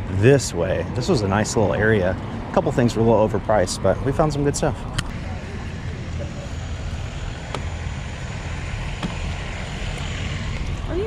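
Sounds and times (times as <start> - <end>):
low rumble of traffic: 0.0 - 11.0.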